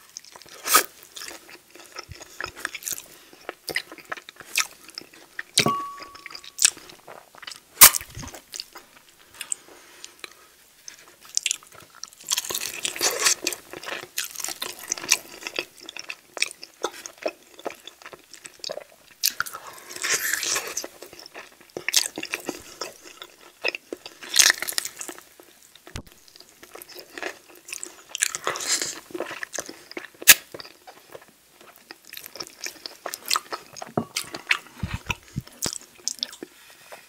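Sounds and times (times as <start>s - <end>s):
wet chewing and smacking: 10.2s - 36.5s.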